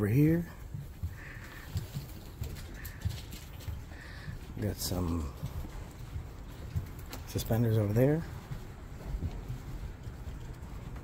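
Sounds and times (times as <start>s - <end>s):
footsteps: 0.0s - 11.0s.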